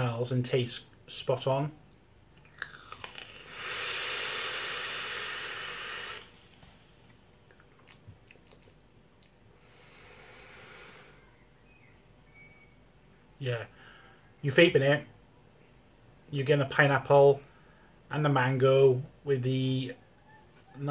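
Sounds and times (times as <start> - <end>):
hiss of air through e-cigarette: 2.9 - 6.9, 9.6 - 11.2
breathy exhale: 3.1 - 6.9, 9.6 - 11.4, 13.7 - 14.3.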